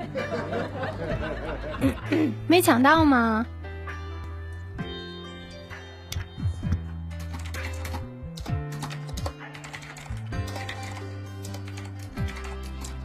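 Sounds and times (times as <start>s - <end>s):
background music with bass and kick drum: 0.0s - 7.2s
typing on keyboard: 7.2s - 13.0s.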